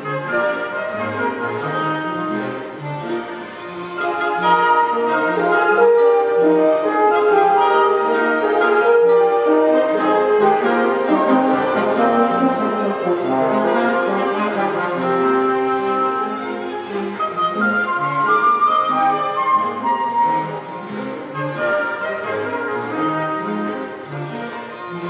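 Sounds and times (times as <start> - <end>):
bowed strings: 0.0 - 25.0
wind instruments: 0.0 - 25.0.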